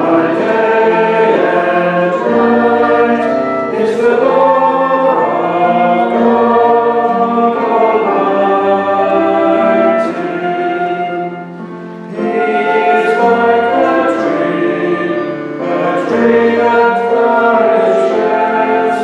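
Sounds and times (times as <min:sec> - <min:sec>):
congregation singing: 0:00.0 - 0:19.0.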